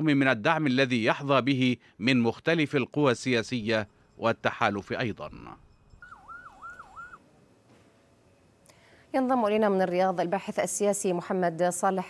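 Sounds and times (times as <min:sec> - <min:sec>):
emergency siren yelping: 0:06.0 - 0:07.3.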